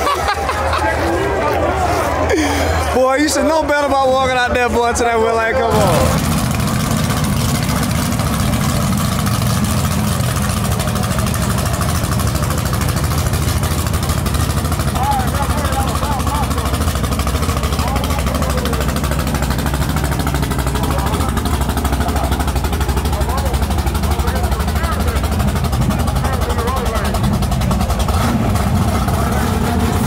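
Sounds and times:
car engine idling: 0.0s - 30.0s.

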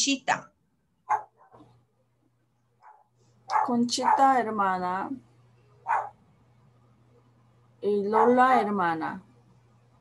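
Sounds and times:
dog barking: 1.0s - 1.7s, 2.8s - 4.4s, 5.8s - 6.2s, 8.1s - 8.5s.

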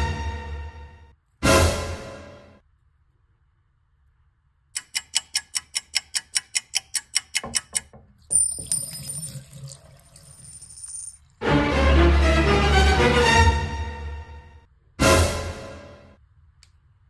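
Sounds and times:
sharp ringing ticks: 4.8s - 7.9s
tap water running into sink: 7.9s - 10.8s.

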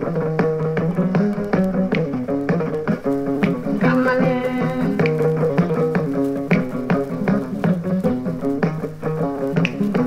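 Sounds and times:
plucked lute playing: 0.0s - 10.0s.

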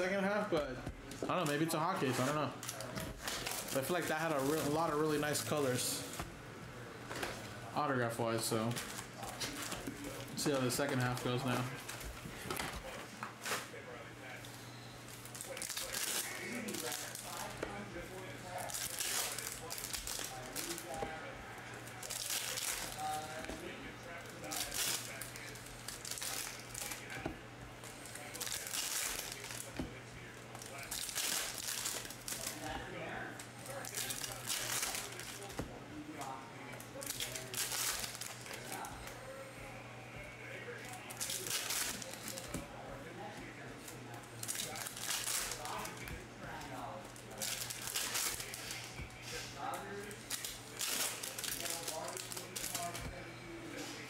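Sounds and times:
foil wrappers crinkling: 1.1s - 6.2s, 8.4s - 35.6s, 36.2s - 39.3s, 40.7s - 54.0s.

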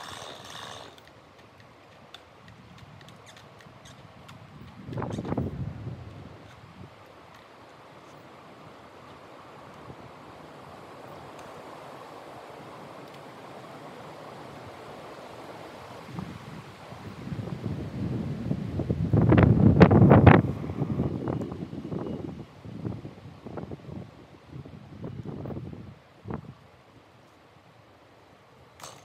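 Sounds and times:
wind buffeting microphone: 2.4s - 9.0s, 15.8s - 26.7s.

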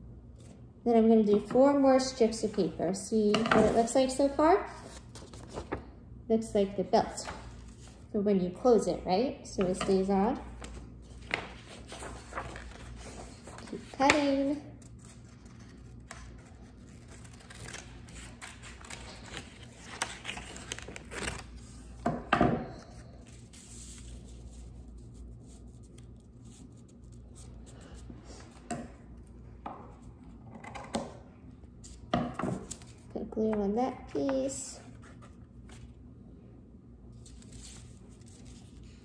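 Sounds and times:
paper rustling: 4.7s - 5.9s, 10.5s - 21.8s.

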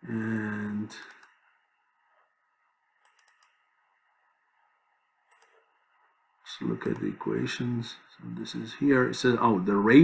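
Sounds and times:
faint room hiss: 0.0s - 10.0s
computer mouse clicks: 1.0s - 1.4s, 3.0s - 3.6s, 5.3s - 5.7s.

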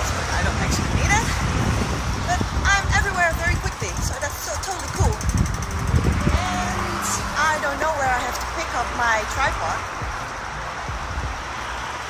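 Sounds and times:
woman talking: 0.0s - 1.4s, 2.2s - 5.3s, 6.3s - 9.9s
street traffic rumble: 0.0s - 12.0s.

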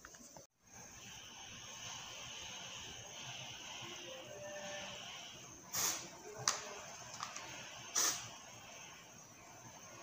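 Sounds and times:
background hiss: 0.0s - 10.0s
thin high steady tone: 0.6s - 10.0s.

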